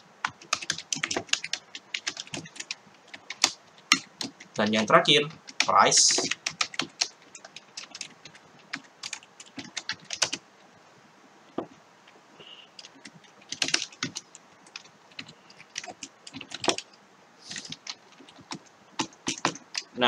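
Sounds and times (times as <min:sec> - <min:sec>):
keyboard typing: 0:00.2 - 0:10.4, 0:12.8 - 0:16.9, 0:17.5 - 0:20.0.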